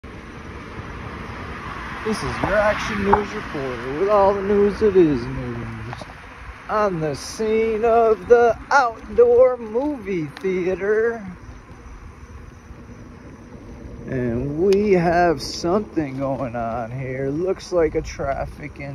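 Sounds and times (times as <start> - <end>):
low rumbling noise: 0.0 - 18.9.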